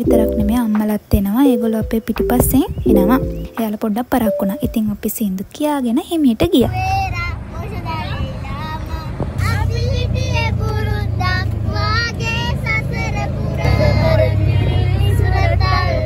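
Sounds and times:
young people singing: 0:11.7 - 0:16.0.

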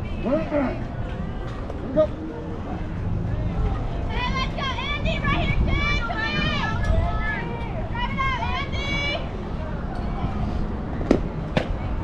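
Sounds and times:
wind rumble on microphone: 0:02.5 - 0:12.0.

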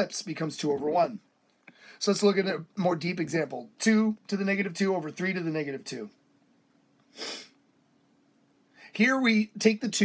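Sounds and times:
sharp breath through the nose: 0:07.1 - 0:07.6.

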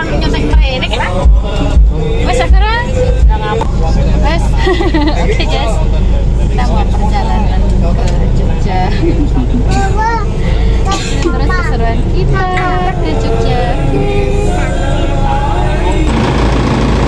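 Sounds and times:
bus engine rumble: 0:00.0 - 0:17.0
passengers talking: 0:00.0 - 0:17.0.

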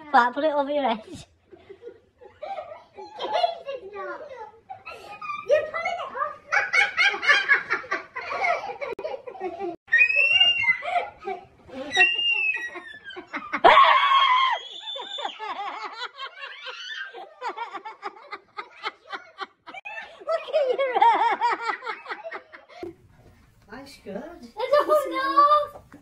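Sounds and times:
women and girls laughing: 0:01.0 - 0:04.0, 0:06.5 - 0:22.8
high squeal of laughter: 0:09.9 - 0:15.6, 0:16.4 - 0:17.2.

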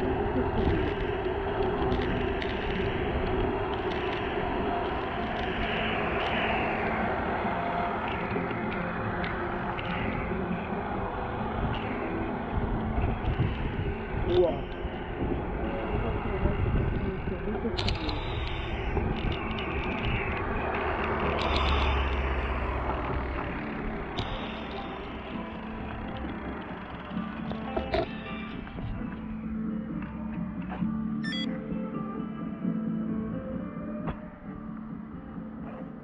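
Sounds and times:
wind rushing on camera: 0:00.0 - 0:29.5
bike clicks and rattles: 0:17.8 - 0:28.8
bicycle tyres on wet road: 0:18.3 - 0:28.1.

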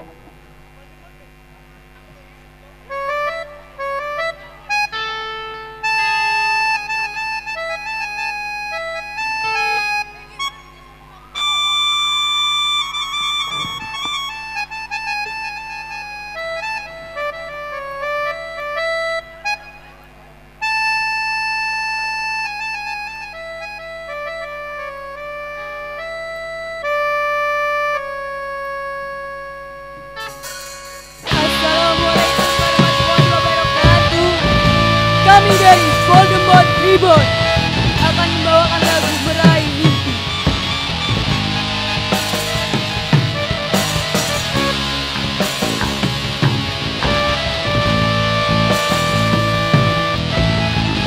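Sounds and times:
electronic keyboard melody: 0:02.8 - 0:51.0.

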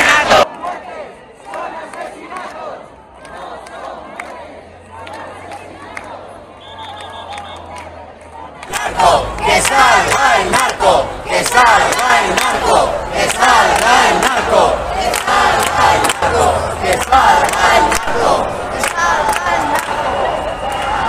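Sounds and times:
crowd of protesters shouting: 0:00.0 - 0:21.0.

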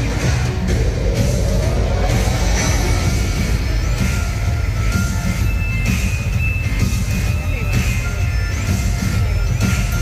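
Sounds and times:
soundtrack music with heavy bass: 0:00.0 - 0:10.0.

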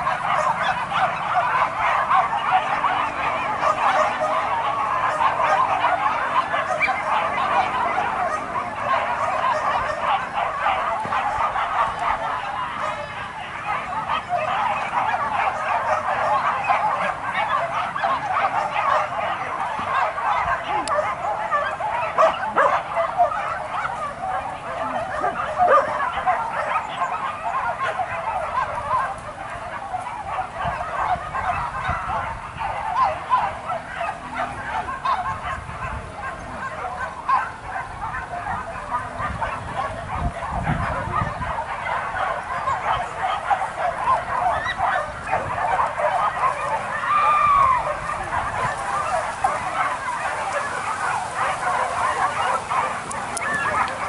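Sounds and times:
dogs barking and yelping: 0:00.0 - 0:54.0.

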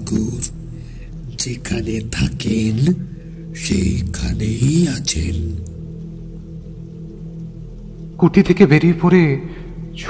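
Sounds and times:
low music drone: 0:00.0 - 0:10.0
person speaking: 0:01.2 - 0:05.8.

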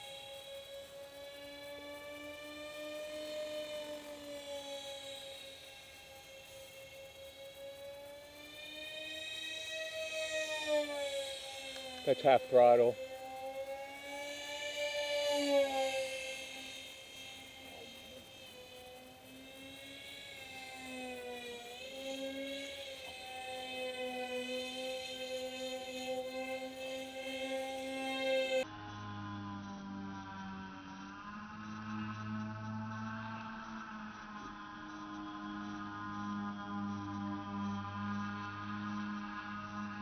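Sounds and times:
model plane propellers whining: 0:00.0 - 0:40.0
slowed propeller drone: 0:00.0 - 0:40.0.

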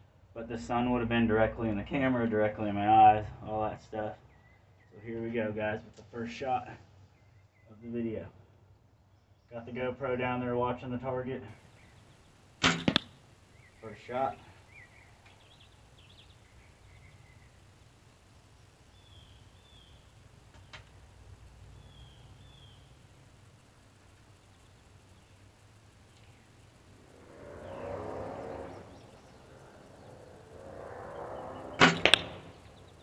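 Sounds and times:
faint bird chirps: 0:04.1 - 0:05.2, 0:06.9 - 0:08.0, 0:11.6 - 0:33.0
bow shot sharp cracks: 0:12.6 - 0:13.2, 0:30.4 - 0:32.9.

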